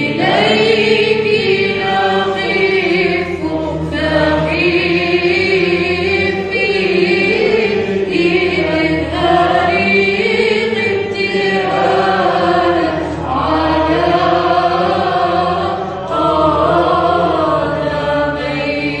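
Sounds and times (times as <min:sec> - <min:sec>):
group singing a hymn: 0:00.0 - 0:19.0
low drone: 0:00.0 - 0:19.0.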